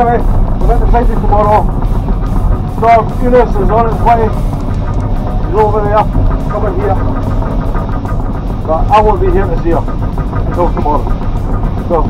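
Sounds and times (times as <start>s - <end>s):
diesel engine droning: 0.0s - 12.0s.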